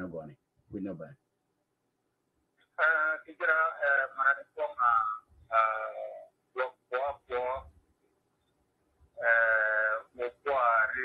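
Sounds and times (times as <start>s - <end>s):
man holding a vowel: 2.8s - 7.6s, 9.2s - 11.0s.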